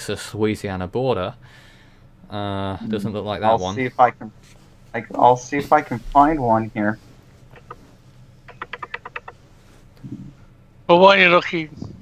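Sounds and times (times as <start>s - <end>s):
computer mouse clicks: 7.5s - 7.8s, 8.5s - 9.4s.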